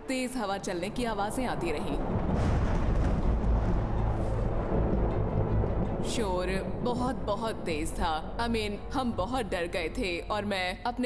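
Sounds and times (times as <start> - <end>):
ominous background music: 0.0 - 11.0
deep steady rumble: 0.6 - 10.9
wind rushing: 0.9 - 8.9.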